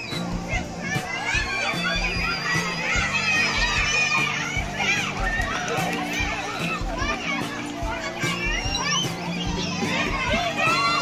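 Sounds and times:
children shouting and calling: 0:00.0 - 0:11.0
music playing: 0:00.0 - 0:11.0.

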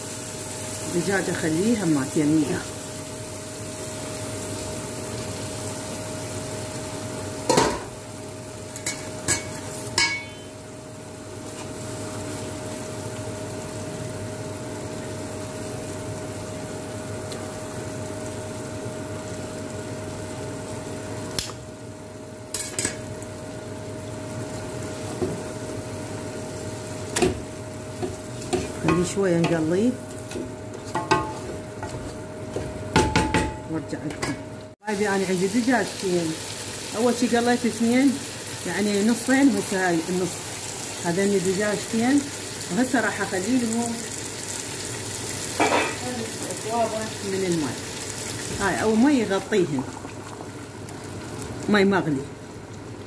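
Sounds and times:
sauce sizzling in a pot: 0:00.0 - 0:32.0, 0:34.8 - 0:53.0.

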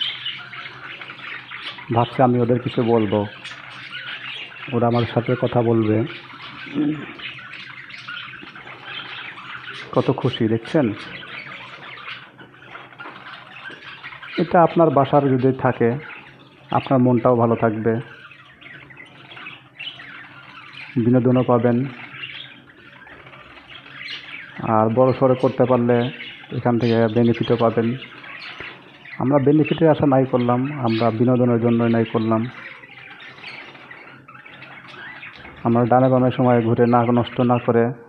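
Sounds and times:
budgerigars chirping and warbling: 0:00.0 - 0:38.0.

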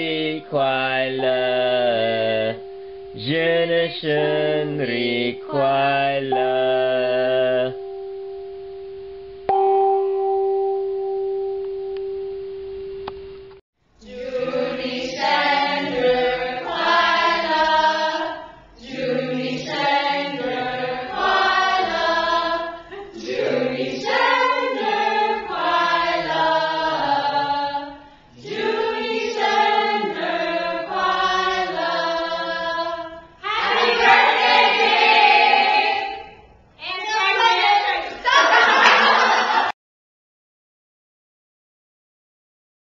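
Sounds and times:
group singing in chorus: 0:00.0 - 0:07.8, 0:14.0 - 0:36.5
gong ringing: 0:07.6 - 0:13.6.

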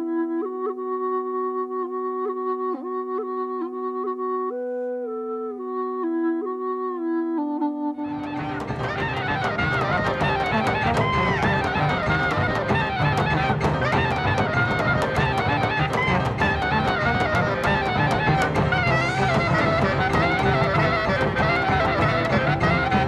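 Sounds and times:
band playing clarinet-led music: 0:00.0 - 0:23.0
gourd flute melody with drone: 0:00.0 - 0:23.0.

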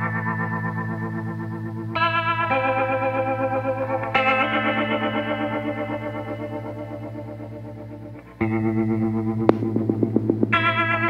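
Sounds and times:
instrumental music chords: 0:00.0 - 0:11.0.

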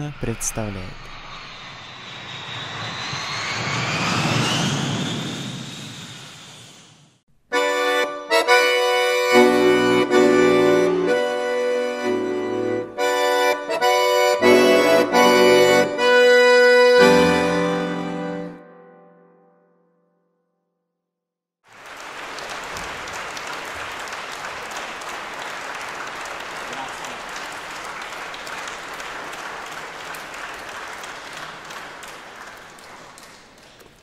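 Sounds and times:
whooshing sound effect: 0:00.0 - 0:07.0
accordion chords: 0:07.5 - 0:19.5.

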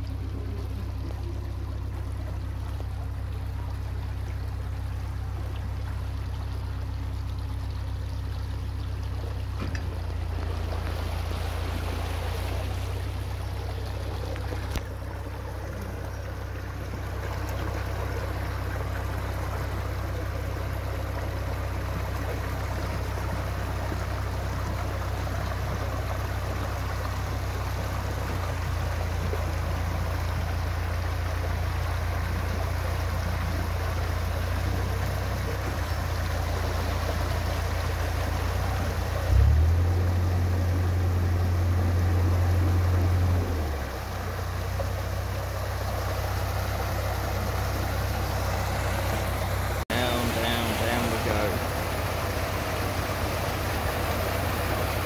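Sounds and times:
boat engine idling: 0:00.0 - 0:55.0
water cascading through lock gate: 0:00.0 - 0:55.0.

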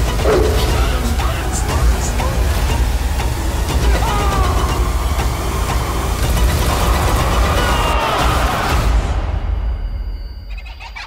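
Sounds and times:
deep steady rumble: 0:00.0 - 0:03.7.

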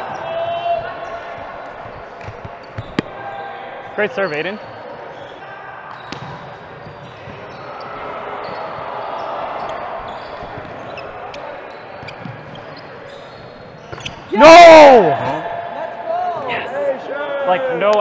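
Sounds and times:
gymnasium background din: 0:00.0 - 0:18.0
volleyball hits: 0:00.8 - 0:03.2, 0:05.9 - 0:07.4
shoe squeaks: 0:01.6 - 0:03.5, 0:06.0 - 0:14.4.

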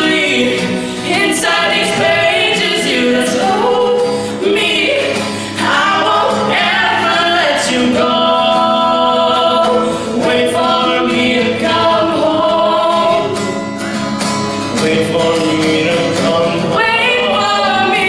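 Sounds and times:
man and woman singing duet: 0:00.0 - 0:13.6, 0:14.7 - 0:18.0
strummed acoustic guitar: 0:00.0 - 0:18.0.

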